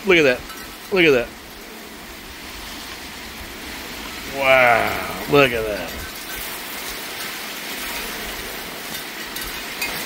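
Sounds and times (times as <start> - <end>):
heavy rain: 0.8 - 10.0.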